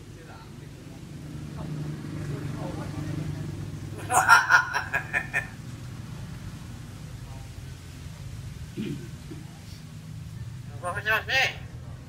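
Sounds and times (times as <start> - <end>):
myna bird chattering: 10.3 - 11.6.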